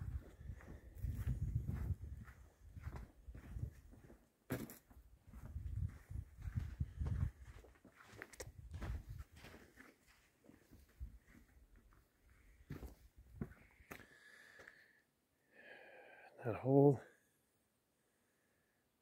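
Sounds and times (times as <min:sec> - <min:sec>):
low rumbling scuffs: 0:00.0 - 0:10.2.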